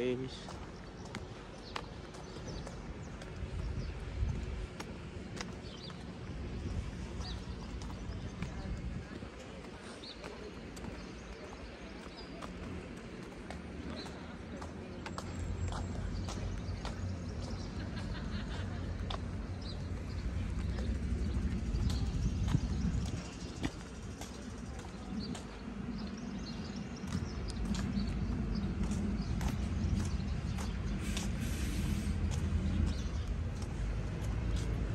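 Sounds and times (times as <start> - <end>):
footsteps on pavement: 0.0 - 34.9
low outdoor rumble: 0.0 - 34.9.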